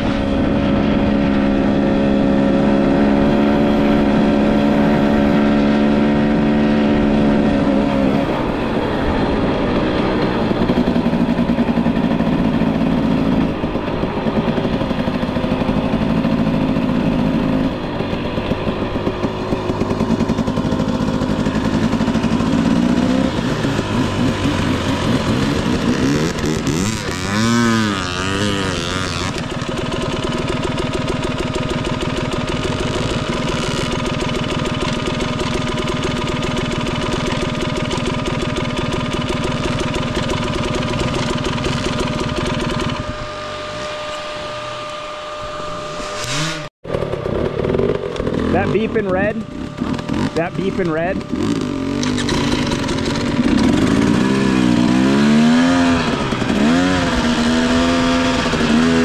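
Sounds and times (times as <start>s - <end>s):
two-stroke engine revving: 0.0s - 59.0s.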